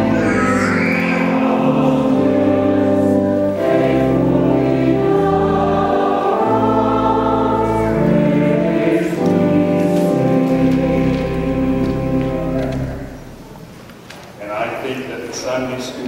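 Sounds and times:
church choir singing: 0.0s - 13.5s
organ chords: 0.0s - 15.9s.

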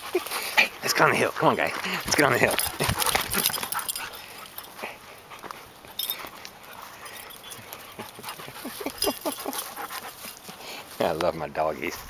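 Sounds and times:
dogs panting: 0.0s - 11.3s
paws scuffling on dirt: 0.0s - 12.0s.

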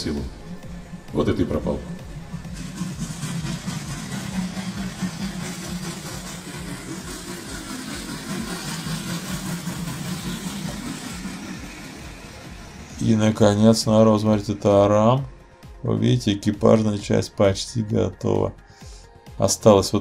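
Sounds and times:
steam locomotive running: 0.0s - 15.3s.

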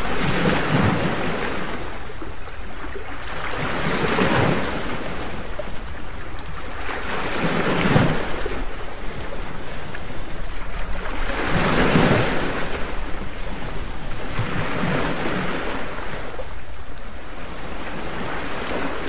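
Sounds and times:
ocean waves washing in: 0.0s - 19.0s.

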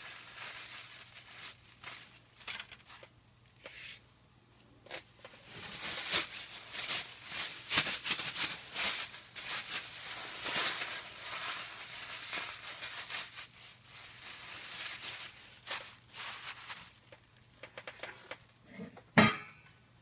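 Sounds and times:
plastic bags crackling: 0.0s - 3.6s, 5.2s - 18.0s.

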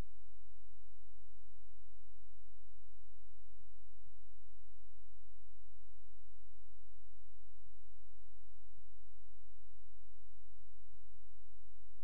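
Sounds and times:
electrical hum with buzzing: 0.0s - 12.0s.

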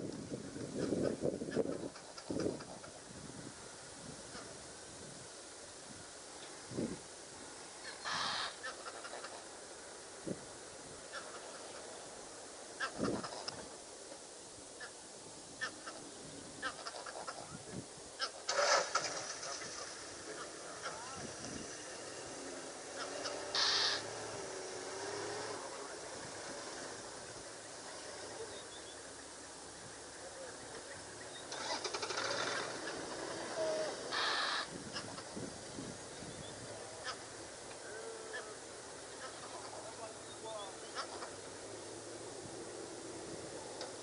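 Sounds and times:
harsh bird call: 7.8s - 9.2s, 22.8s - 24.2s, 30.2s - 35.3s
short high bird calls: 7.8s - 9.3s, 22.9s - 24.2s, 30.1s - 35.3s.

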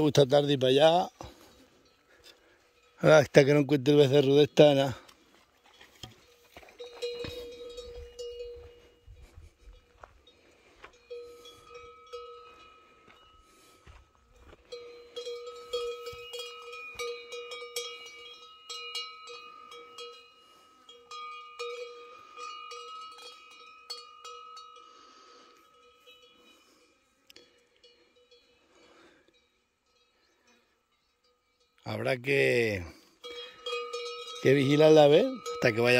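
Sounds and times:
cowbell ringing: 0.0s - 35.9s.

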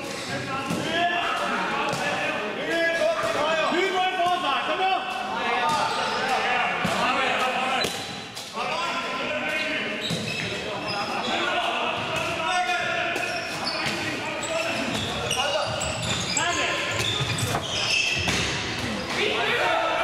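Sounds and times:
handball bouncing on court floor: 5.1s - 8.5s, 10.0s - 10.6s, 13.1s - 19.2s
shoes squeaking: 7.8s - 11.5s, 13.2s - 19.2s.

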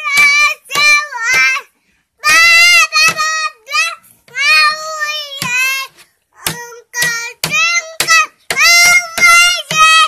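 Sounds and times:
boy singing: 0.0s - 10.0s.

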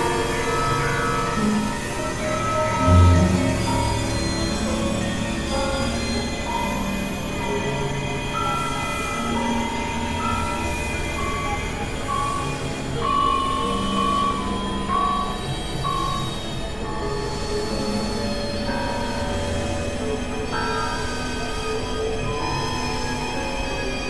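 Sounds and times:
dense noisy drone: 0.0s - 9.3s
held synthesizer tones: 2.8s - 4.8s.

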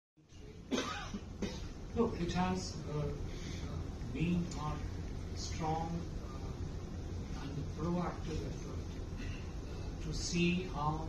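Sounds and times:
low room hum: 0.2s - 11.0s
man coughing: 0.7s - 1.8s.

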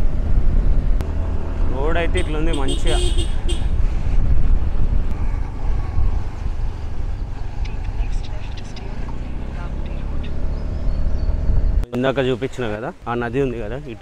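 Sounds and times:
motorbike engine rumble: 0.0s - 11.9s
wind buffeting microphone: 0.0s - 11.9s.

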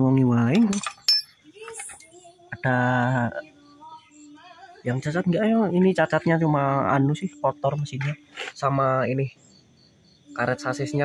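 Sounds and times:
metallic clink: 0.6s - 2.2s.

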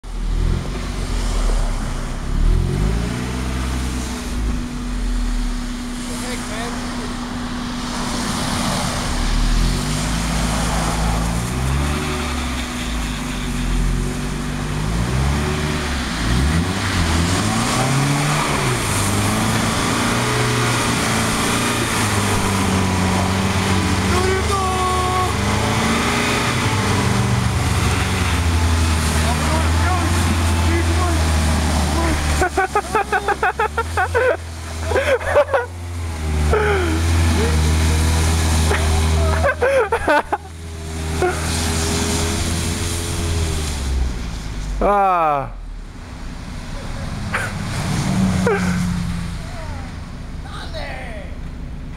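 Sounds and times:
car engine revving: 0.0s - 51.9s.

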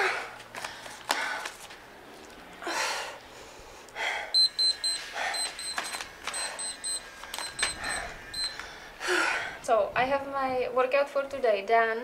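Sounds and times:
heavy breathing: 2.6s - 9.7s
short high timer beeps: 4.4s - 8.6s.

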